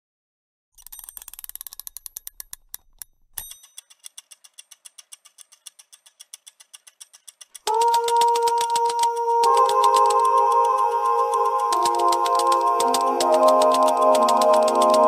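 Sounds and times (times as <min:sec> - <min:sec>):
clockwork mechanism ticking: 0:00.8 - 0:15.0
typewriter clicks: 0:00.8 - 0:15.0
sustained sung chord: 0:07.7 - 0:15.0.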